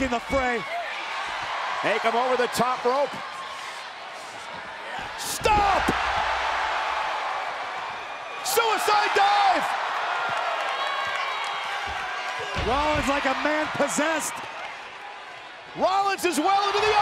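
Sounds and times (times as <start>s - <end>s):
arena crowd noise: 0.0s - 17.0s.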